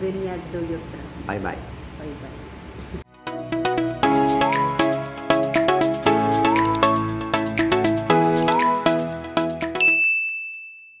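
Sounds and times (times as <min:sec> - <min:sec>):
background music with beat: 0:03.1 - 0:09.9
high ding sound effect: 0:09.8 - 0:11.0.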